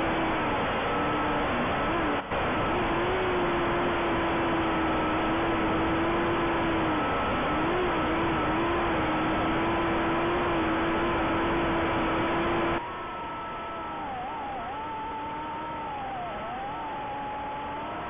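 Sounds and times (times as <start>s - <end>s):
drone motors whining: 0.0s - 18.0s.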